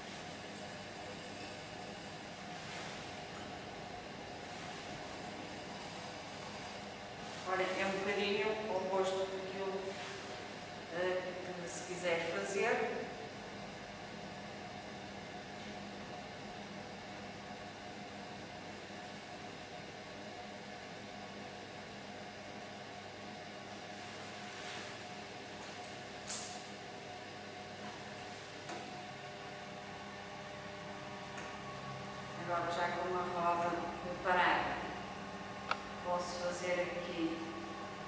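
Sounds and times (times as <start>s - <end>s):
potter's wheel humming: 0.0s - 38.0s.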